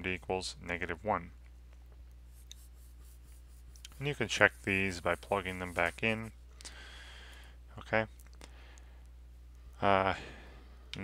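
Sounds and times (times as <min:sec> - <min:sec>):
low electrical hum: 0:00.0 - 0:11.0
marker pen scratching on paper: 0:02.3 - 0:06.3.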